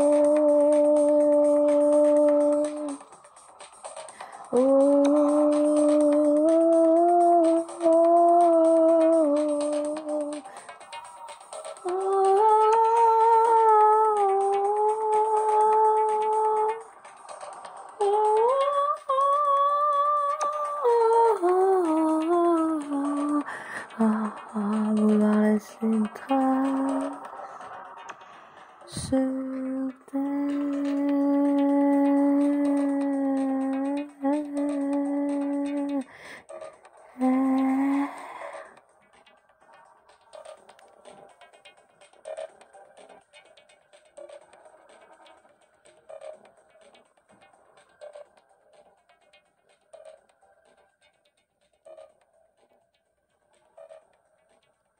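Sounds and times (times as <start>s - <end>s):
woman humming: 0.0s - 3.1s, 4.5s - 10.4s, 28.9s - 36.1s, 37.1s - 38.8s
backing track with ticking beat: 0.0s - 54.9s.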